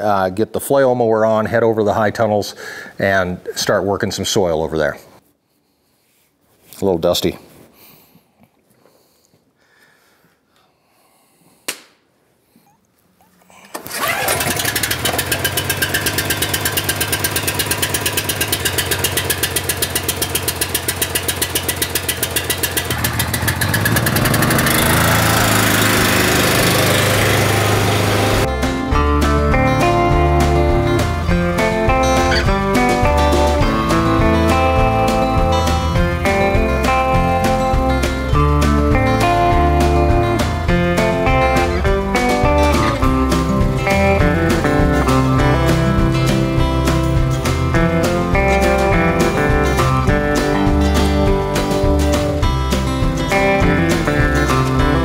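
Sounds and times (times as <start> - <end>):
small gasoline engine running: 13.8 - 28.6, 30.0 - 46.2
guitar music: 22.8 - 55.0.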